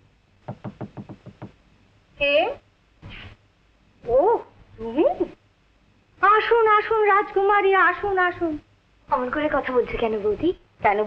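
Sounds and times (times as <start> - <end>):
knocking on a door: 0.4 - 1.6.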